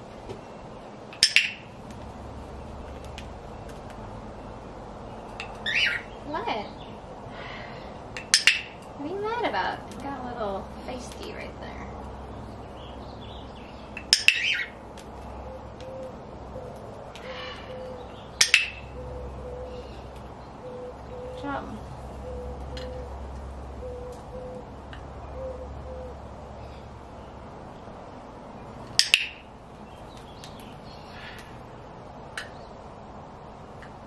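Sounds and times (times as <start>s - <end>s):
cockatiel squawk: 5.6s - 6.1s.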